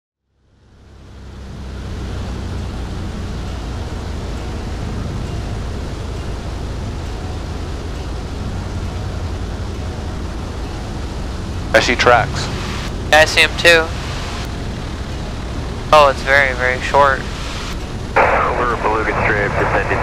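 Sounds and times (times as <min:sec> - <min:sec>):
light plane engine drone: 0:00.3 - 0:20.0
air noise: 0:01.2 - 0:20.0.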